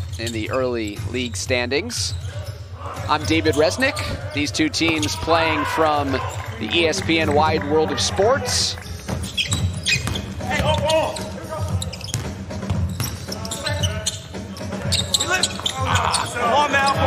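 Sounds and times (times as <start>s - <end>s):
players calling out: 2.1s - 12.1s, 13.0s - 17.0s
basketball bouncing on hardwood: 9.1s - 11.0s, 11.7s - 13.2s.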